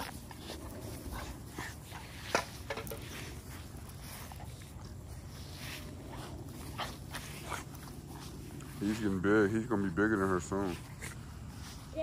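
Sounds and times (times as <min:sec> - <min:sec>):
dogs scuffling: 0:00.0 - 0:12.0.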